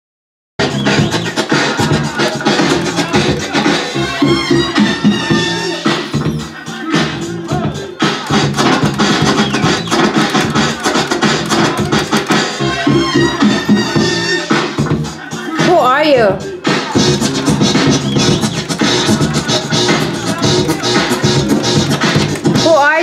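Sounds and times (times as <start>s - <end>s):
dance music beat: 0.6s - 23.0s
vinyl record scratches: 0.6s - 23.0s.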